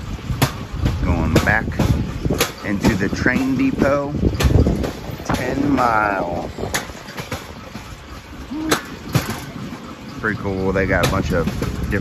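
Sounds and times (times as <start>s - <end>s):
steel wheels rumbling on track: 0.0s - 12.0s.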